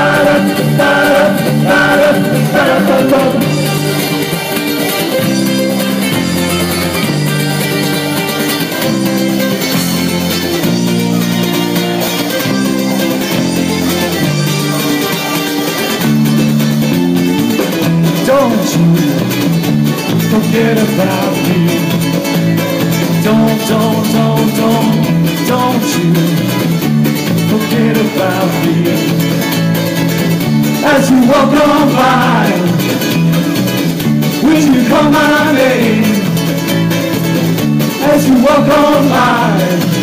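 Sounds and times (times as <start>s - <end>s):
ukulele band playing: 0.0s - 40.0s.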